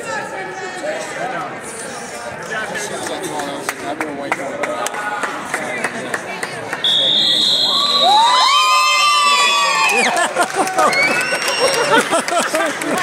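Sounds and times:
crowd cheering and shouting: 7.6s - 13.0s.

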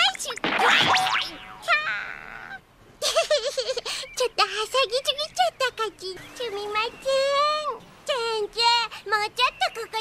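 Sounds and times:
girl's high cartoon voice: 0.0s - 2.6s, 4.1s - 10.0s
cartoon crash: 0.4s - 1.9s.

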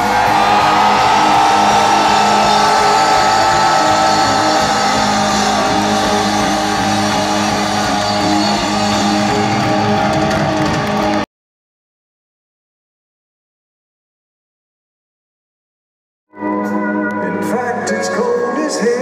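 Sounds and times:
electric guitar sustained notes: 0.0s - 11.2s, 16.3s - 19.0s
live rock band playing: 0.0s - 11.2s.

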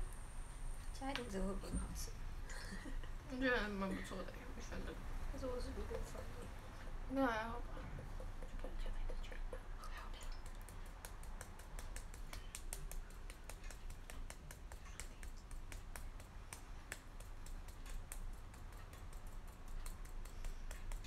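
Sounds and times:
low steady hum: 0.0s - 21.0s
rapid light clicks and taps: 8.0s - 21.0s.

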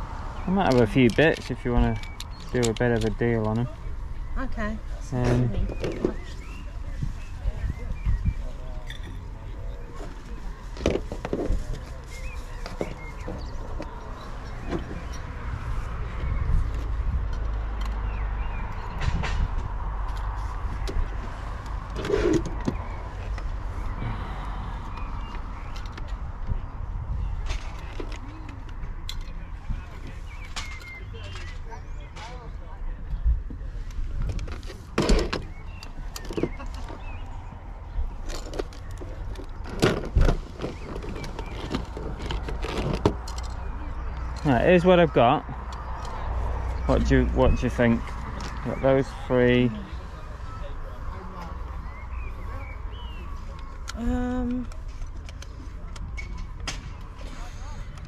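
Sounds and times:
faint background voices: 3.4s - 15.1s, 45.5s - 58.0s.

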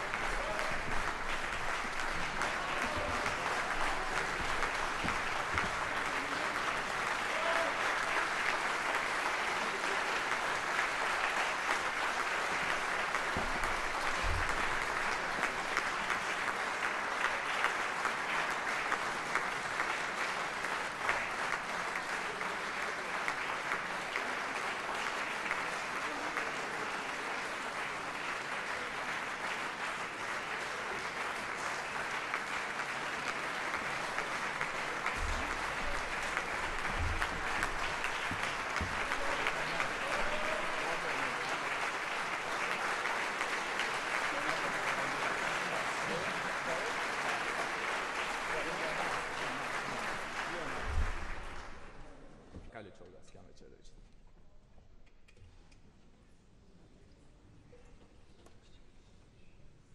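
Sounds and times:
audience applauding: 0.0s - 52.3s.

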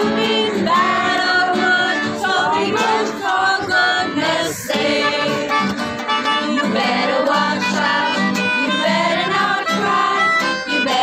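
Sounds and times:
group singing unaccompanied carol: 0.0s - 11.0s.

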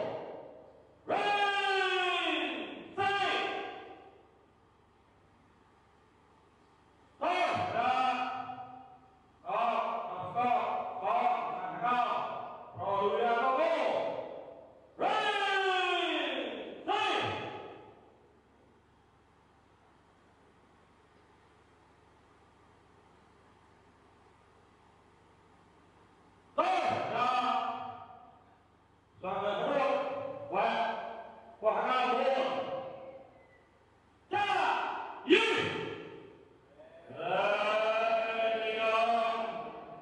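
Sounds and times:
man calling out over microphone: 1.0s - 4.0s, 7.2s - 17.7s, 26.6s - 28.1s, 29.2s - 33.2s, 34.3s - 36.0s, 36.8s - 40.0s.

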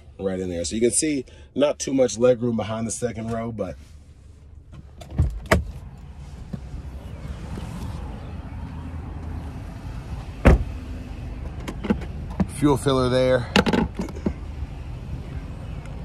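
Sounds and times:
car door latch clicks: 4.7s - 5.8s
car door shutting thump: 5.0s - 5.7s, 10.4s - 10.8s.

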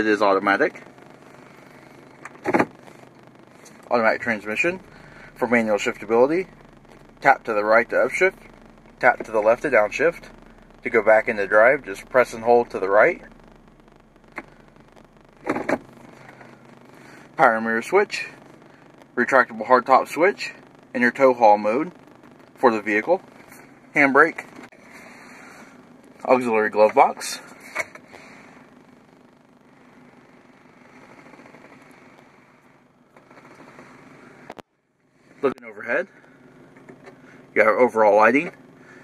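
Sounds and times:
car cabin hum: 0.8s - 16.9s.

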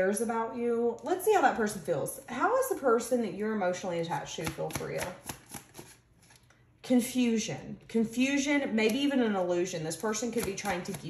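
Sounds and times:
cards being shuffled: 5.1s - 6.5s.

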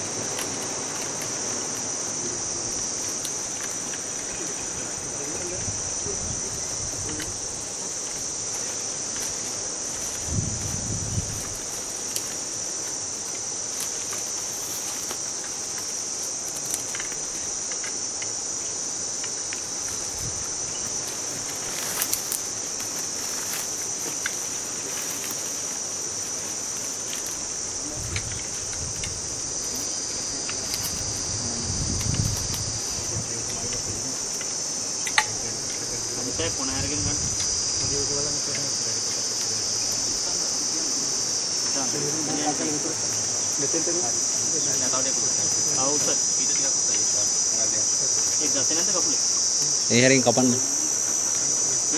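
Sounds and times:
insect chorus drone: 0.0s - 51.9s.

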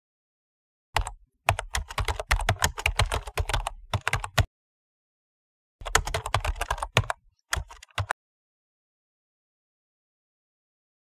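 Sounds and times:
keyboard typing: 1.0s - 4.5s, 5.8s - 8.2s.

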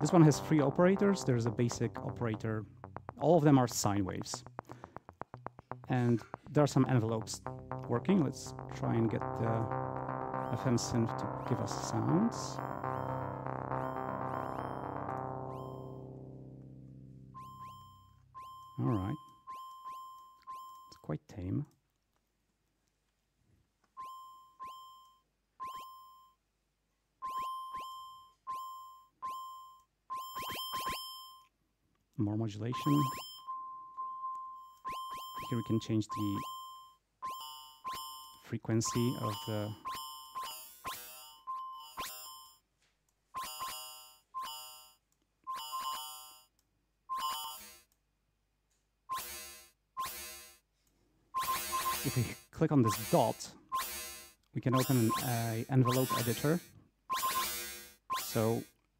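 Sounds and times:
synthesizer short sequenced notes: 0.0s - 21.6s, 24.0s - 26.1s, 27.2s - 31.2s, 32.2s - 42.4s, 51.4s - 58.7s.

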